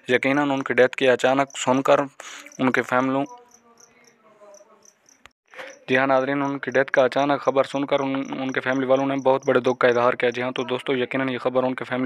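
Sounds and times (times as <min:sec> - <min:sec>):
faint insect chirping: 0:01.3 - 0:10.8.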